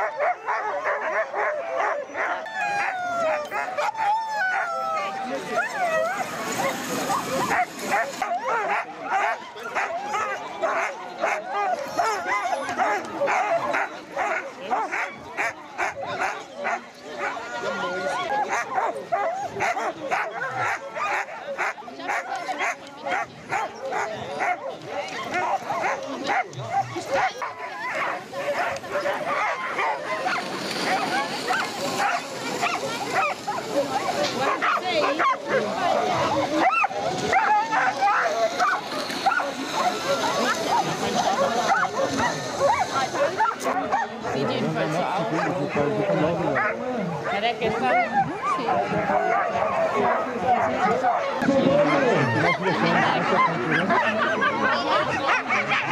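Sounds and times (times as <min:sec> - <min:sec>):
sled dogs barking and yipping: 0:00.0 - 0:55.9.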